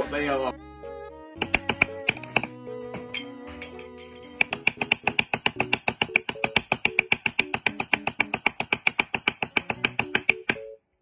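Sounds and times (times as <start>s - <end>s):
wooden sticks clacking: 1.4s - 10.6s.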